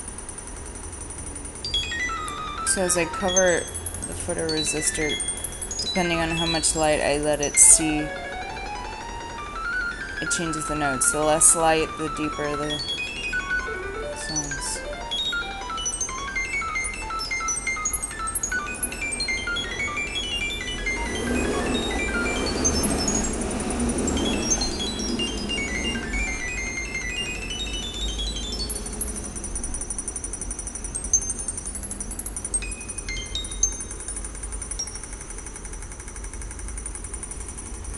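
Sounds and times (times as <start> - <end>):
high held synth tones: 0.0 - 36.0
short synthesised beeping tones: 0.9 - 36.0.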